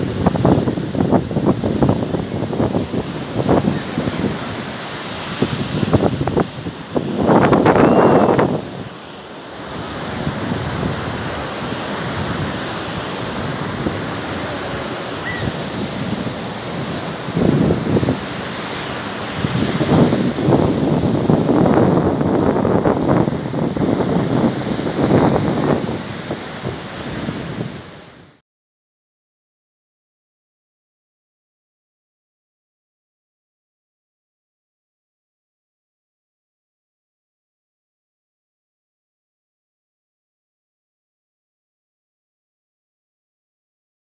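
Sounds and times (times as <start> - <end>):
wind buffeting microphone: 0.0 - 9.0, 9.6 - 28.3
surf breaking on beach: 0.0 - 28.4.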